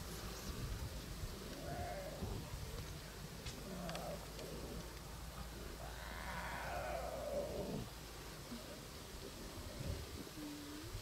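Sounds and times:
lion cub mewing: 0:05.8 - 0:07.9.

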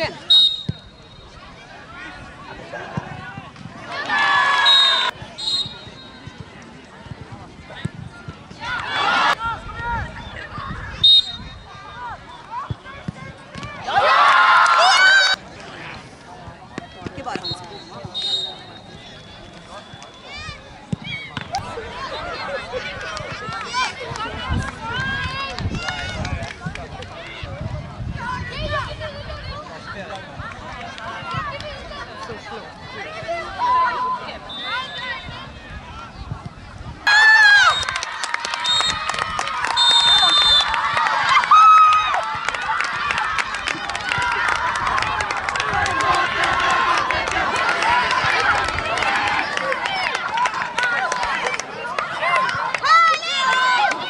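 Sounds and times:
boys shouting and cheering: 0:01.4 - 0:05.2, 0:11.6 - 0:15.4, 0:20.1 - 0:27.6, 0:28.2 - 0:36.1, 0:37.0 - 0:54.0.

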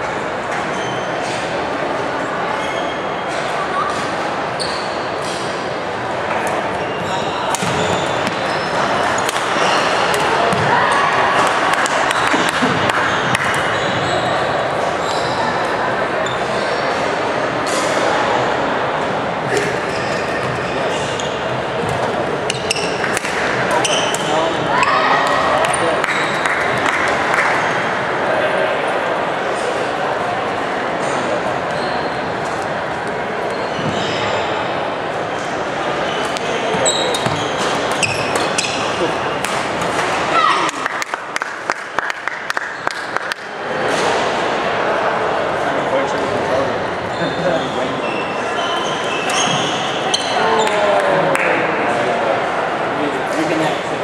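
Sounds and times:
spectators chatting: 0:00.0 - 0:54.0
shoe squeaks: 0:00.6 - 0:01.4, 0:02.5 - 0:05.6, 0:06.8 - 0:10.6, 0:12.0 - 0:17.0, 0:19.4 - 0:23.1, 0:23.7 - 0:25.1, 0:31.7 - 0:32.4, 0:33.5 - 0:34.6, 0:36.0 - 0:39.3, 0:47.0 - 0:50.4
racket hitting shuttlecock: 0:07.5 - 0:08.4, 0:09.2 - 0:10.7, 0:23.0 - 0:24.3.

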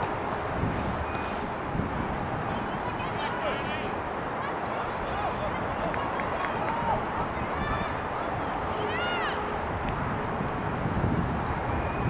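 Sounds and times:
high-pitched shout: 0:08.8 - 0:09.5.

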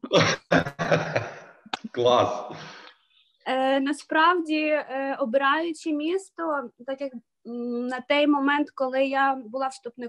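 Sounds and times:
breathy vocal sounds: 0:00.0 - 0:01.4, 0:02.4 - 0:03.0.

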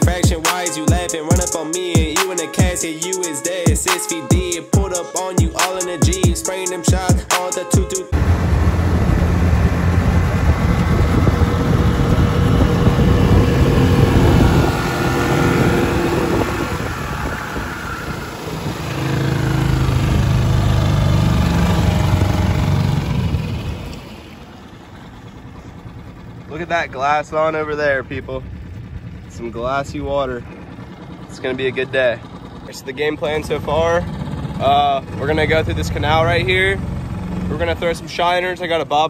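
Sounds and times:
wind: 0:00.0 - 0:39.0
outboard motor running: 0:08.1 - 0:39.0.

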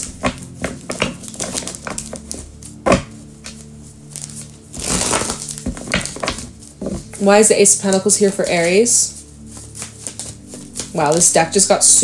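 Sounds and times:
cards being shuffled: 0:00.0 - 0:12.0
soft background music: 0:00.0 - 0:12.0.

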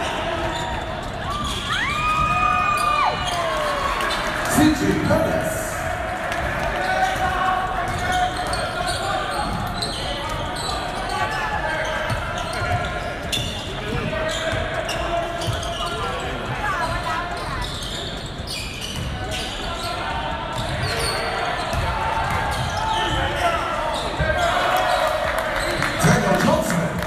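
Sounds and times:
hubbub of spectators' voices: 0:00.0 - 0:27.0
basketball bouncing on wooden court: 0:21.6 - 0:23.4.

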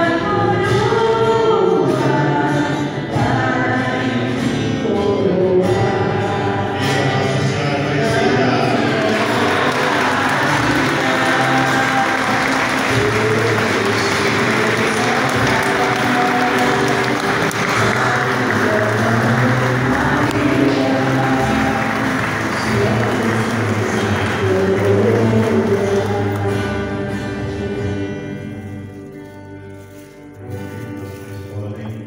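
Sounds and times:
music with long held notes: 0:00.0 - 0:32.0
congregation applauding: 0:08.5 - 0:27.4.

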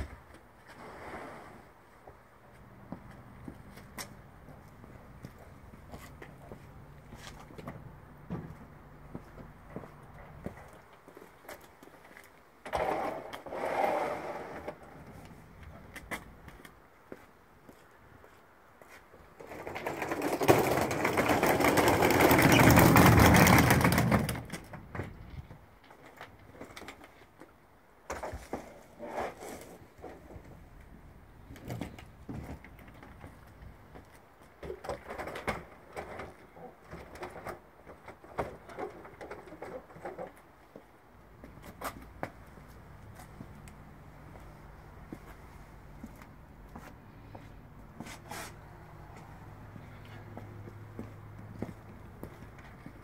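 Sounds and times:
suitcase wheels rattling over bricks: 0:19.4 - 0:25.3.

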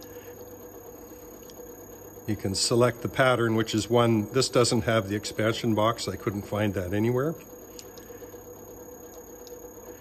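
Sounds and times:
wood lathe humming: 0:00.0 - 0:07.6.

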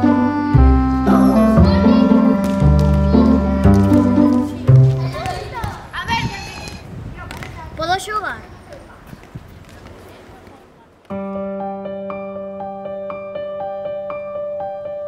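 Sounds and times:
slow piano music: 0:00.0 - 0:04.9, 0:11.1 - 0:15.0.

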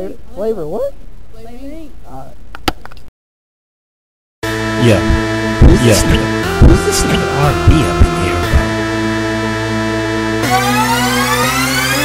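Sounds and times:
held synth chords: 0:04.4 - 0:12.0
rising synth sweep: 0:04.4 - 0:12.0.

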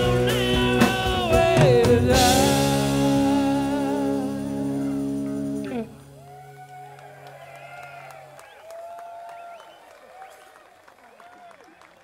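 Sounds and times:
rock band chord: 0:00.0 - 0:07.0
audience whooping and cheering: 0:06.1 - 0:12.0.

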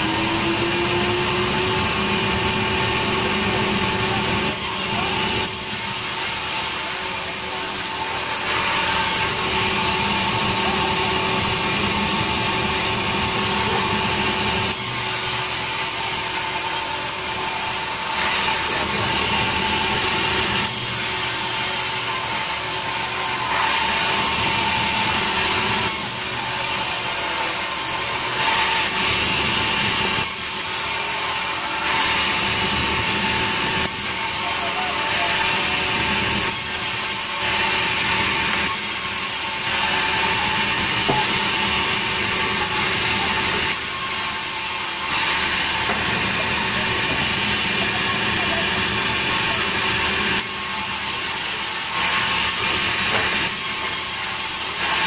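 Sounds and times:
band saw cutting log: 0:00.0 - 0:55.0.

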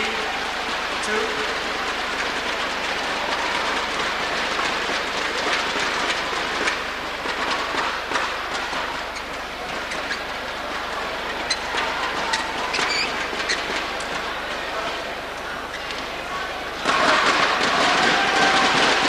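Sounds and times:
sharp claps and clacks: 0:00.0 - 0:15.0, 0:15.8 - 0:19.0
crowd din: 0:00.0 - 0:19.0.

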